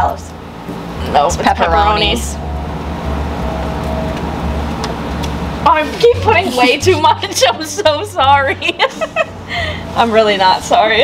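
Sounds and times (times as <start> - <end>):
low rumble with hiss: 0.0 - 11.0.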